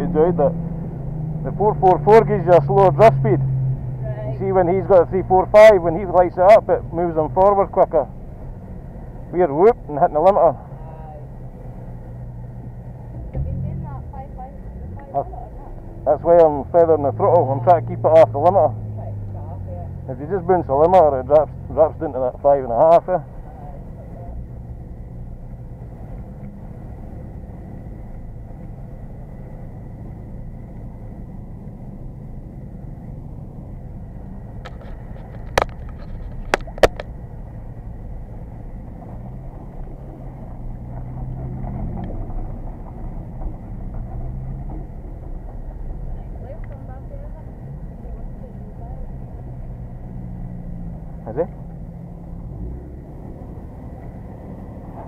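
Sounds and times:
car engine at low revs: 0.0 - 55.0.

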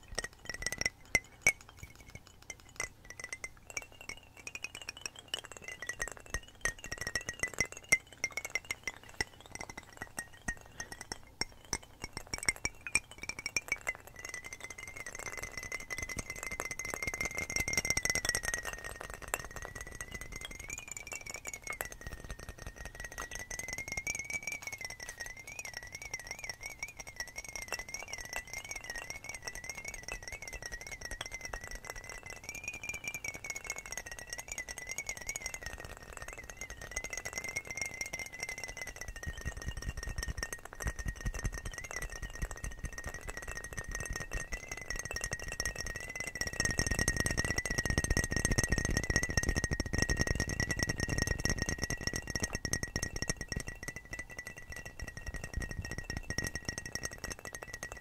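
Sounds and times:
fingernails tapping on glass bottles: 0.0 - 58.0
wavering high tone: 0.0 - 58.0.

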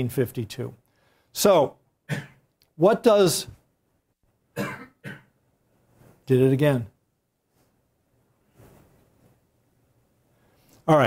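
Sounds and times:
man coughing: 2.1 - 2.4, 4.6 - 5.4.

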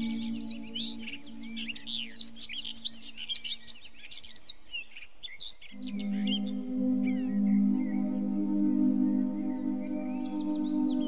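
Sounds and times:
low held musical tone: 0.0 - 3.3, 5.7 - 11.0
songbirds chirping and singing: 0.0 - 11.0.

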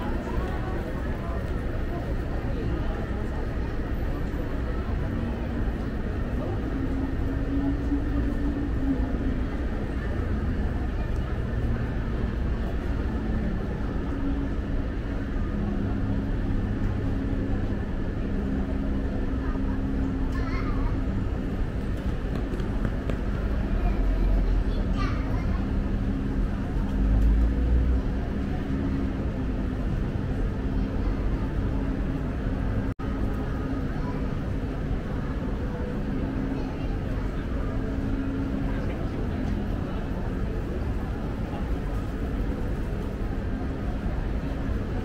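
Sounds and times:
people talking: 0.0 - 45.0
traffic rumble: 0.0 - 45.0.

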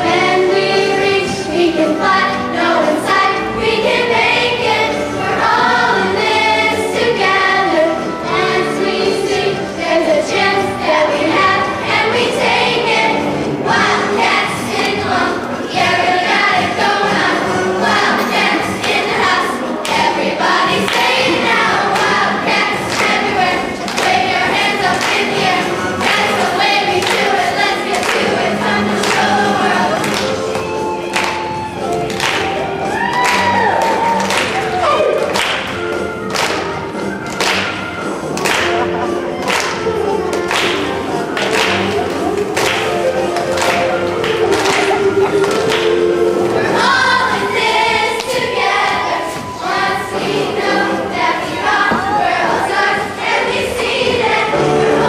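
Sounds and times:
children's choir singing: 0.0 - 55.0
music: 0.0 - 55.0
rhythmic clapping: 2.8 - 55.0.

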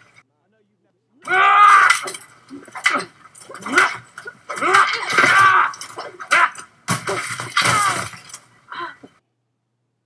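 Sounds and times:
fighters grunting or shouting: 1.2 - 2.1, 2.8 - 6.6, 7.6 - 8.1.

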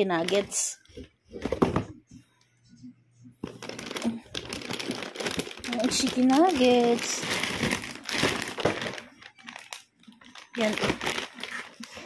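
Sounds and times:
plastic bag crinkling: 3.4 - 12.0.

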